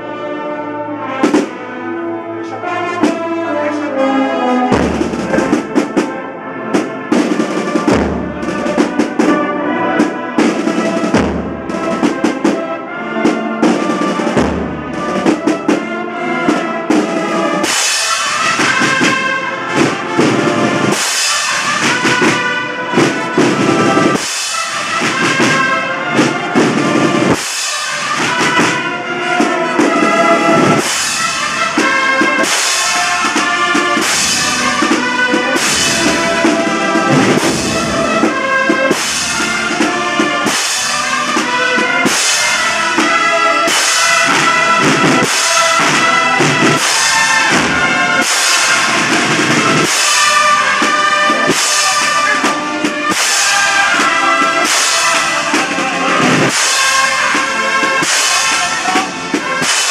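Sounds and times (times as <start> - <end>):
brass band playing march: 0.0 - 59.9
deep drum beats: 1.2 - 1.6, 4.7 - 59.9.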